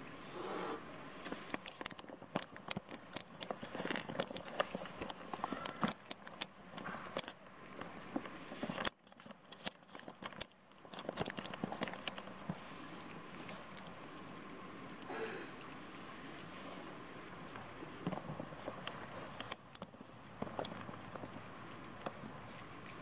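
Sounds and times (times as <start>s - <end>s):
cats chewing and licking: 1.2s - 14.1s, 17.8s - 23.0s.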